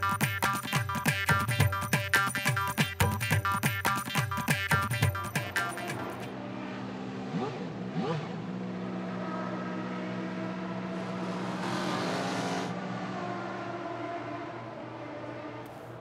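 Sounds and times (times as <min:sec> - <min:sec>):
race car engines revving: 0:05.2 - 0:16.0
cars sweeping past: 0:05.4 - 0:16.0.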